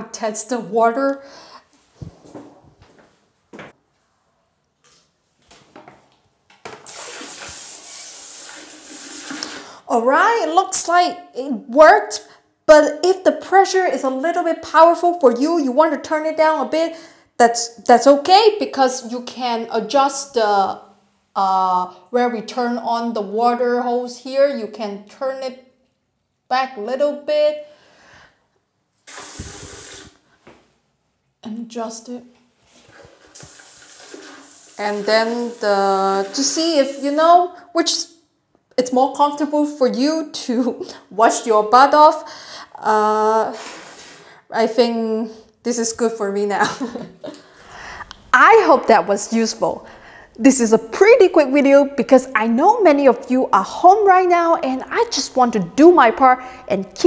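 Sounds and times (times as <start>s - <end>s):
sprayer hissing water into toilet: 6.8s - 9.8s, 29.0s - 30.2s, 32.9s - 37.4s, 43.5s - 44.3s.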